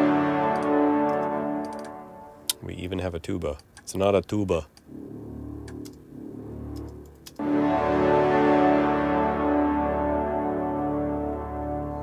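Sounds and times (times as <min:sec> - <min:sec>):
low sustained brass note: 0:00.0 - 0:02.5, 0:04.9 - 0:12.0
orchestral sustained chord: 0:00.0 - 0:02.5, 0:04.9 - 0:12.0.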